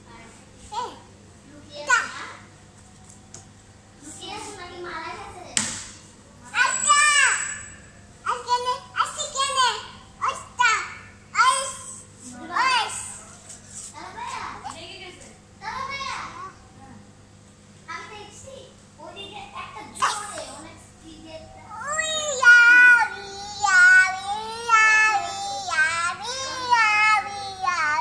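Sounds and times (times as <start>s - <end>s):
toddler exclaiming: 6.6s - 7.7s, 21.7s - 28.0s
small child's vocal sounds: 21.7s - 28.0s.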